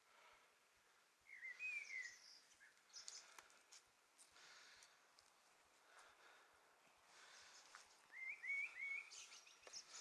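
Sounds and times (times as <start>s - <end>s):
quiet outdoor ambience: 0.0s - 10.0s
songbird singing: 1.1s - 4.9s, 6.8s - 10.0s.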